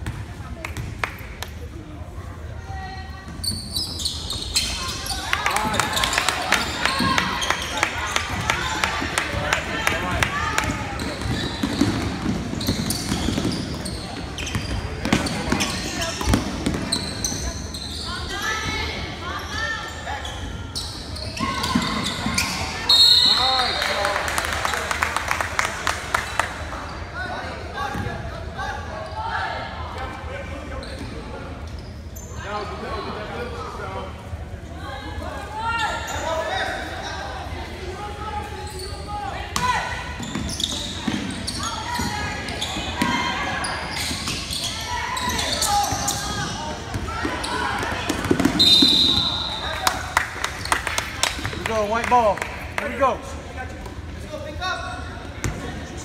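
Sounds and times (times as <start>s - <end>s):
referee's whistle: 22.8s - 23.8s, 48.6s - 49.8s.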